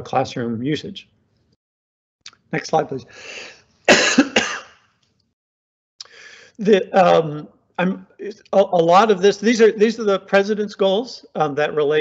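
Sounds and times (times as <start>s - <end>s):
short breath: 3.1s - 3.7s, 6.0s - 6.6s
man coughing: 3.9s - 4.8s.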